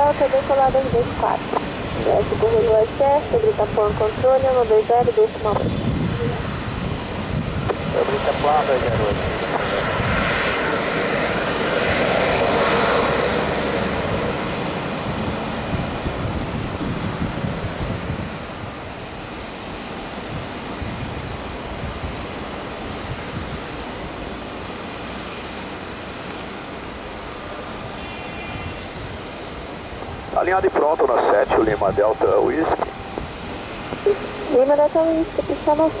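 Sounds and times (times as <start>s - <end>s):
jet engines taxiing: 0.0s - 36.0s.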